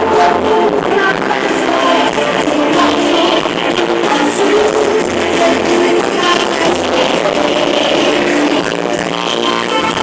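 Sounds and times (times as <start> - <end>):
live gospel band playing: 0.0 - 10.0.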